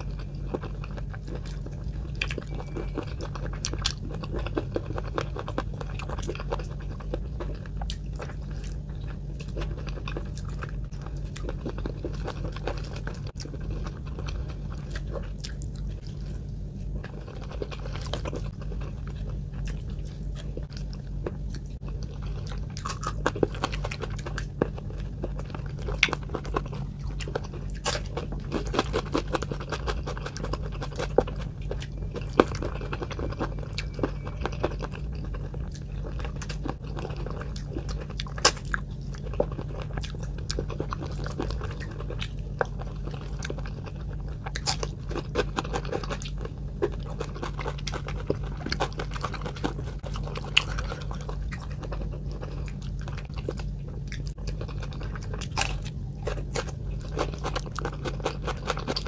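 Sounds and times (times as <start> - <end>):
low hum: 0.0 - 59.0
wet chewing and crunching: 0.0 - 59.0.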